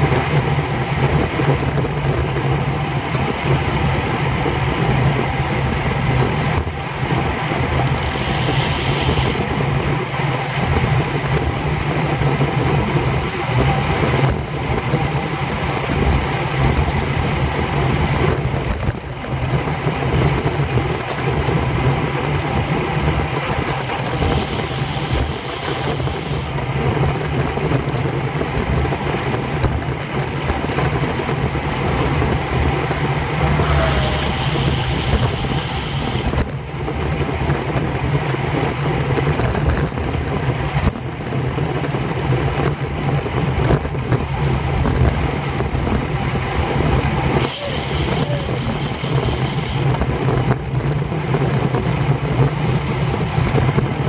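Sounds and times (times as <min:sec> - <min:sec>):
bicycle tyre noise: 0:00.0 - 0:54.0
wind rushing on microphone: 0:00.0 - 0:54.0.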